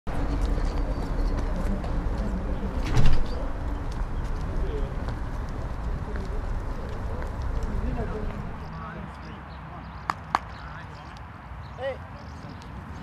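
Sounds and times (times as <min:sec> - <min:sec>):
footsteps on stone paving: 0:00.2 - 0:02.8, 0:03.6 - 0:08.7
faint distant voices: 0:00.7 - 0:13.0.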